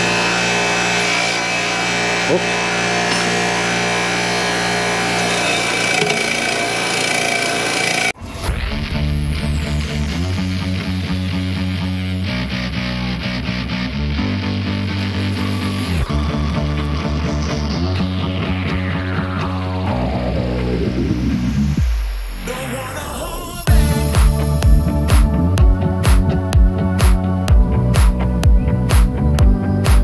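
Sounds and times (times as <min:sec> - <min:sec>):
bench grinder whining: 0:00.0 - 0:08.2, 0:14.2 - 0:19.8
rock music with bass and guitar: 0:08.2 - 0:22.1, 0:23.7 - 0:30.0.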